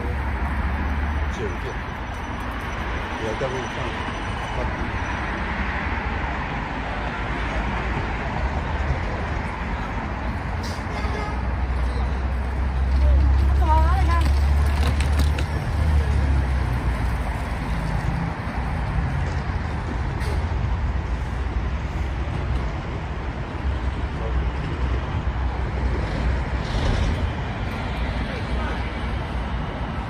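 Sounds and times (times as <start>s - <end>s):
steady traffic hum: 0.0s - 30.0s
voices of passers-by: 0.0s - 30.0s.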